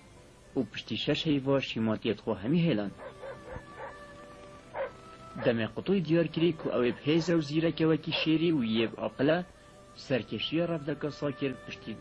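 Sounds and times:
soft background music: 0.0s - 12.0s
cartoon dog barking: 3.0s - 4.0s, 4.8s - 5.5s, 6.6s - 7.4s.

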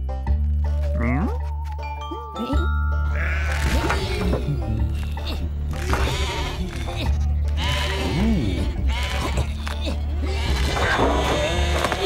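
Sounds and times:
background music with low drone: 0.0s - 12.0s
cartoon sheep bleating: 3.1s - 4.3s, 5.8s - 7.0s, 7.6s - 9.6s.

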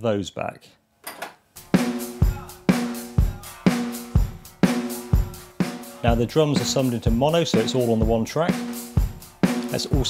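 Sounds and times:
kick and snare drum beat: 1.6s - 10.0s.

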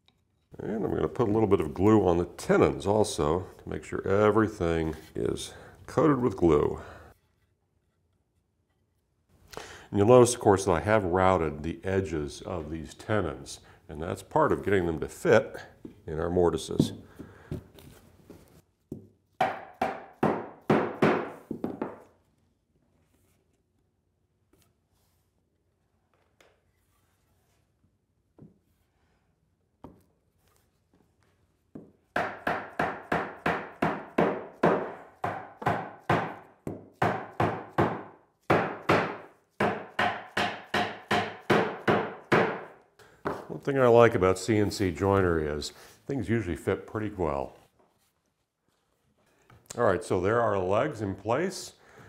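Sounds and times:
mallet striking wood: 18.9s - 22.0s, 31.8s - 43.5s.

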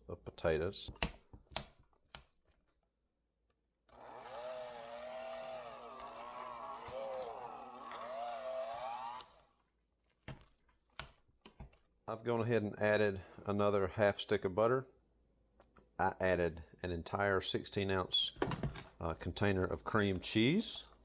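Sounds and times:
electric hand mixer whirring: 3.9s - 9.5s.

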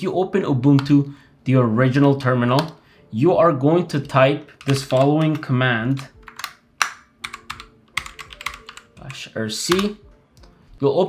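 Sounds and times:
typing on computer keyboard: 4.5s - 10.6s.

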